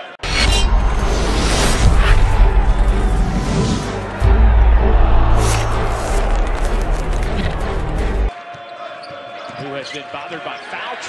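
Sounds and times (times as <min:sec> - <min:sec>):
whoosh: 0:00.0 - 0:08.3
intro music with deep bass: 0:00.2 - 0:08.3
crowd murmur: 0:02.0 - 0:08.4.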